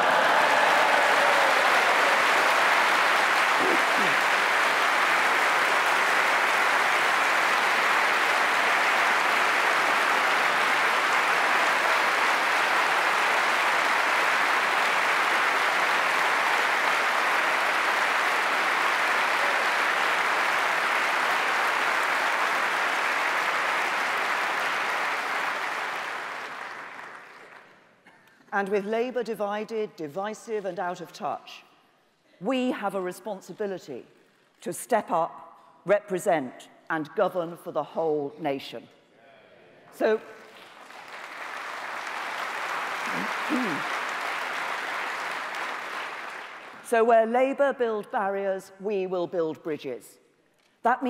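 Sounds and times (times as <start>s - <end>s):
large audience applauding: 0.0s - 27.9s, 40.3s - 47.0s.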